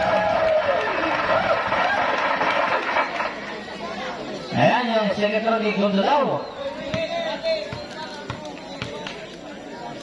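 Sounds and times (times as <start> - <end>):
spectator chatter: 0.0 - 10.0.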